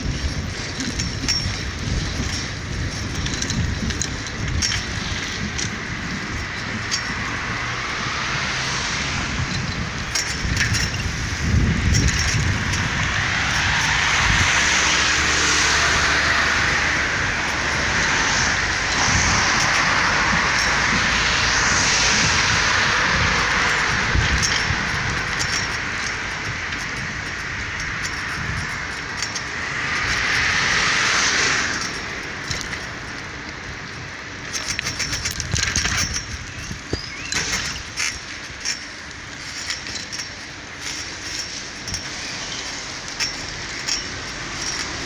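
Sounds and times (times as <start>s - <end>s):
passing traffic: 0.0s - 45.0s
wind on microphone: 0.0s - 45.0s.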